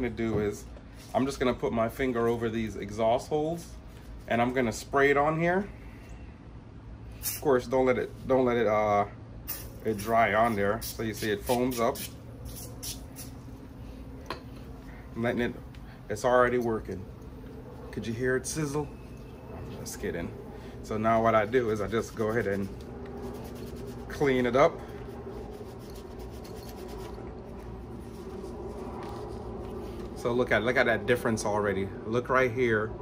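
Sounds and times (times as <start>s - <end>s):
low background hum: 0.0s - 33.0s
cloth rag rubbing: 21.2s - 30.2s.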